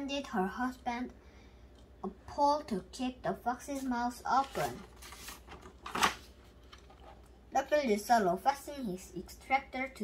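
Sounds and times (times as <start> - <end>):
book page turning: 4.4 - 7.2.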